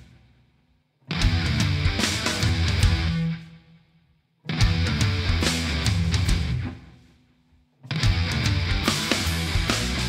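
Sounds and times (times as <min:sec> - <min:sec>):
rock band with drums: 0:00.0 - 0:00.4, 0:01.0 - 0:03.8, 0:04.4 - 0:07.2, 0:07.8 - 0:10.0.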